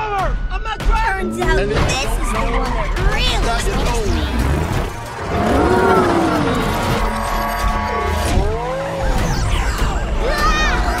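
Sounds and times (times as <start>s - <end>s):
sports car engine revving: 3.9s - 9.5s.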